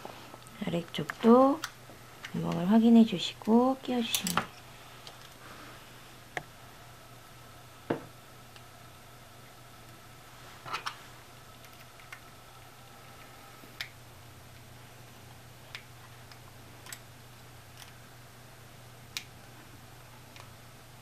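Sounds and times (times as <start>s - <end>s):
faint low hum: 0.0s - 21.0s.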